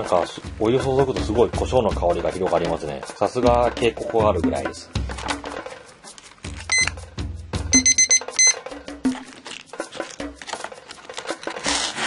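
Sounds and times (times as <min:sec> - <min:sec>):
kitchen timer beeping: 0:06.7 - 0:06.9, 0:07.7 - 0:08.6.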